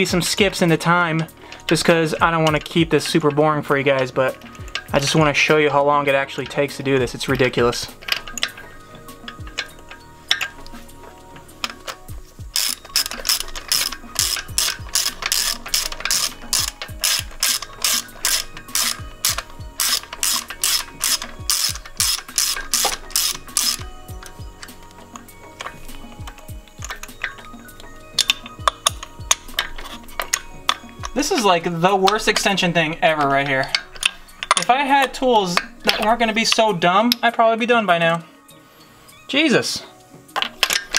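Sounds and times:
hand ratchet clicking: 0:00.0 - 0:37.3, 0:40.3 - 0:40.9.

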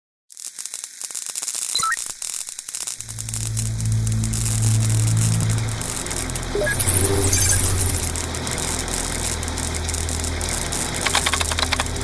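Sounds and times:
crackling static: 0:00.3 - 0:12.0
low bass drone: 0:03.0 - 0:12.0.

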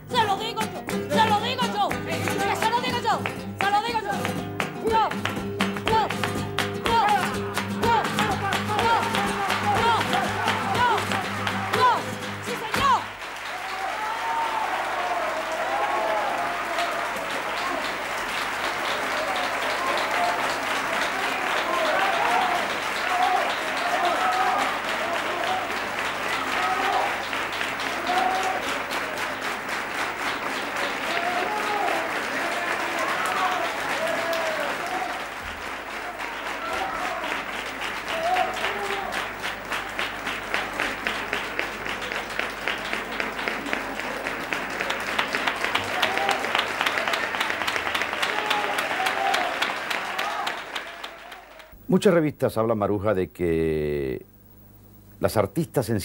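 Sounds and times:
audience applauding: 0:00.0 - 0:51.8
rhythmic clapping in time: 0:00.0 - 0:51.9
voices shouting: 0:06.9 - 0:17.8, 0:19.1 - 0:29.1, 0:30.8 - 0:35.3, 0:36.0 - 0:37.5, 0:48.1 - 0:51.6.

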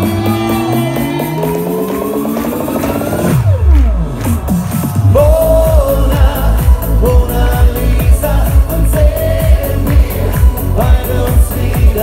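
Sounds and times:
pop concert music over pa: 0:00.0 - 0:12.0.

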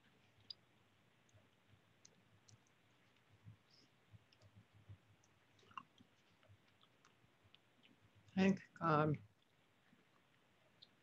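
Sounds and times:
soft clicks: 0:01.2 - 0:08.4.

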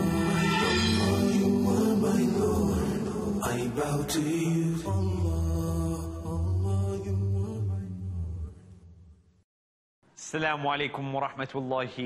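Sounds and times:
low vocal chanting: 0:00.0 - 0:08.6.

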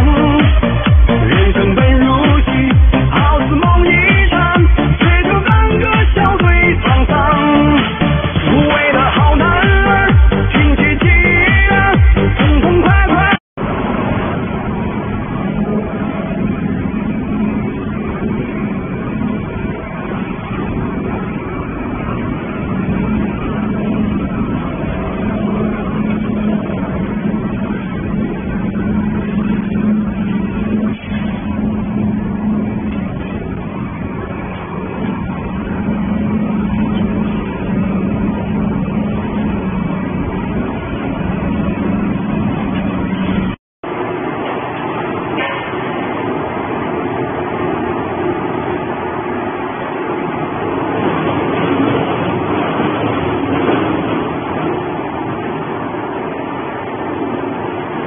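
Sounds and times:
conveyor noise: 0:00.0 - 0:58.0
machine drone with low hum: 0:13.6 - 0:58.0.

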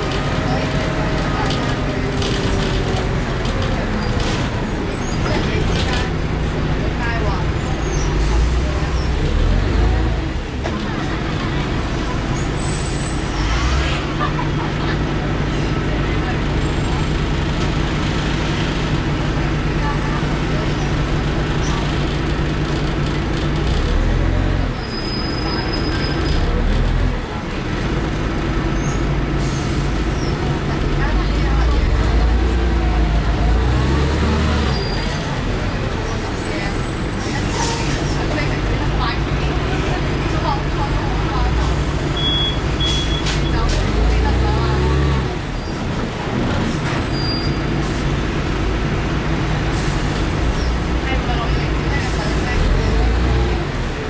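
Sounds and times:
bus diesel engine running: 0:00.0 - 0:54.0.

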